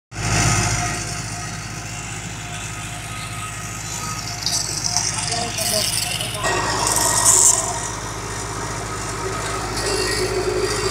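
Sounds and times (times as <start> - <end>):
machinery humming: 0.2 - 10.9.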